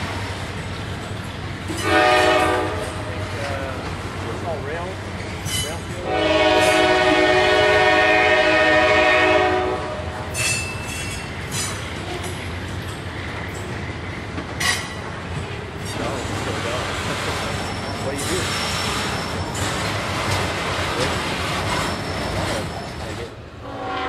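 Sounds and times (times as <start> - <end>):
freight cars rumbling: 0.0 - 9.1, 9.8 - 23.7
locomotive air horn blast: 1.8 - 3.2, 6.1 - 10.3, 23.6 - 24.0.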